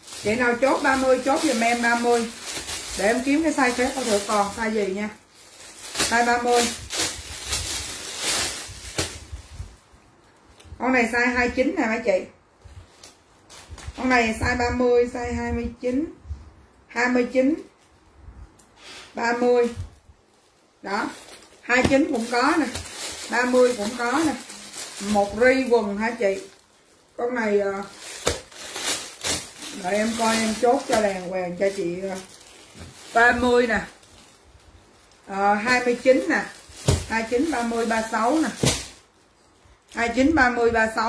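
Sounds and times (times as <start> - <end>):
plastic bags crinkling: 0.0 - 10.6, 20.2 - 40.7
plastic packaging rustling: 0.0 - 10.7, 19.4 - 41.0
sharp plastic crackle: 0.0 - 10.8, 19.7 - 41.0
woman's voice: 0.1 - 5.2, 6.0 - 6.9, 10.8 - 12.4, 14.0 - 16.2, 16.9 - 17.7, 19.1 - 19.9, 20.8 - 26.6, 27.2 - 28.0, 29.6 - 32.3, 33.1 - 34.0, 35.2 - 38.8, 39.9 - 41.0.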